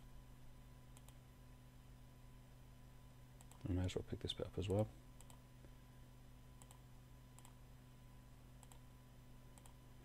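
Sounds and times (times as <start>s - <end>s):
low steady hum: 0.0s - 10.0s
faint computer mouse clicks: 0.9s - 1.2s, 3.4s - 3.7s, 4.7s - 5.4s, 6.6s - 6.8s, 7.4s - 7.6s, 8.6s - 8.8s, 9.6s - 9.8s.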